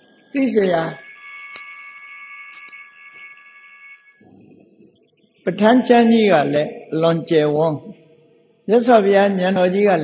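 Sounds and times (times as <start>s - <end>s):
high-pitched ringing tone: 0.0s - 5.4s
spoken syllable: 0.4s - 1.0s.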